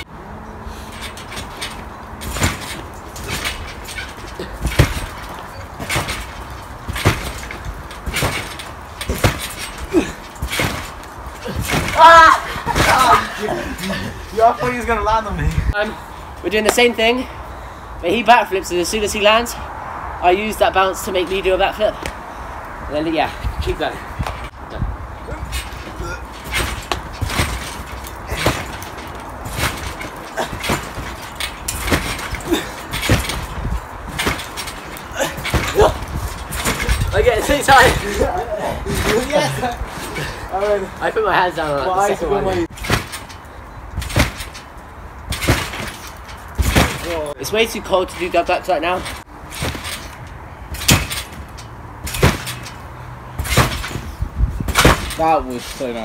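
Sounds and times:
trampoline thudding and creaking: 0.0s - 56.0s.

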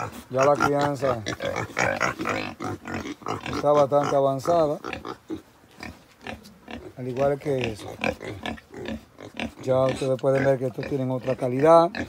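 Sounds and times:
young pigs grunting: 0.0s - 12.0s.

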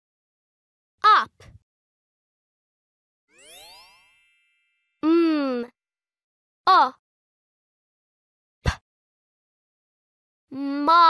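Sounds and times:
chime ringing: 3.3s - 5.0s
person humming: 5.0s - 5.7s, 10.5s - 11.0s.

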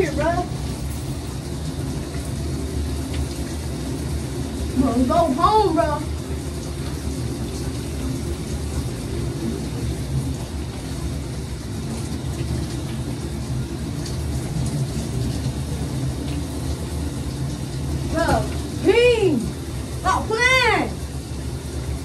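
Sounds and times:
shower water running: 0.0s - 22.0s.

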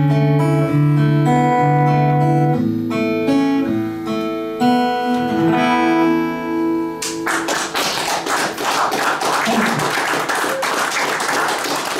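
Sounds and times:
acoustic guitar chord: 0.0s - 7.3s
audience clapping: 7.0s - 11.9s.

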